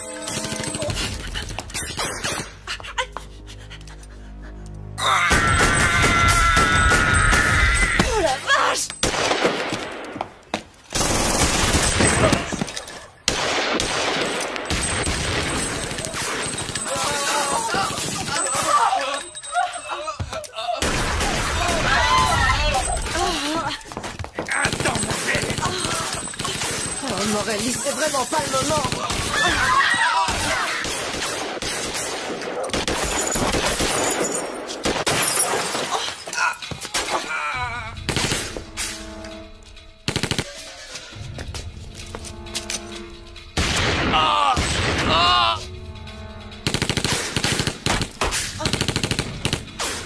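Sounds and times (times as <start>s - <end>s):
dramatic music: 0.0s - 10.1s, 36.4s - 50.0s
people shouting: 5.0s - 8.9s, 16.6s - 23.8s, 24.6s - 27.0s, 28.7s - 31.0s, 44.0s - 45.7s
rapid gunfire: 40.1s - 40.6s, 46.6s - 50.0s.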